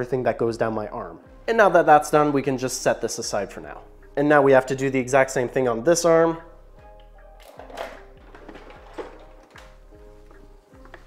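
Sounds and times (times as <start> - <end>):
music with steady beat and synth: 6.4 - 11.0.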